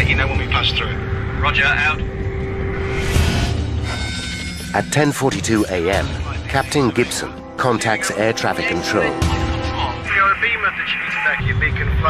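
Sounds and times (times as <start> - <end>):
high music tones: 0.0 - 11.6
steady low rumble: 0.0 - 12.0.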